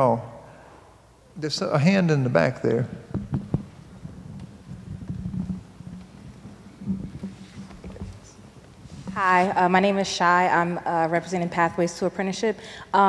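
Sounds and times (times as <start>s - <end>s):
sound system hum: 0.0s - 13.0s
microphone handling noise: 2.7s - 9.8s.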